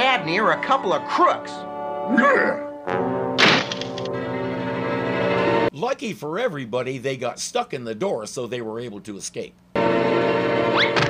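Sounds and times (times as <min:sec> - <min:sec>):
held music chord: 0:00.0 - 0:03.4, 0:04.0 - 0:05.7, 0:09.8 - 0:11.0
cartoon thunk sound effect: 0:03.4 - 0:04.2.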